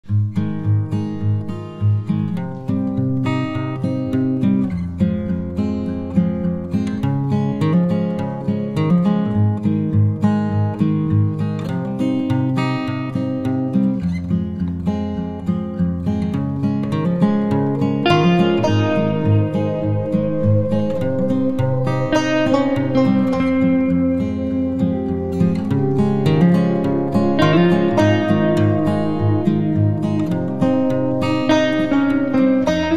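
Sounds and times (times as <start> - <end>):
plucked acoustic guitar music: 0.0 - 32.9.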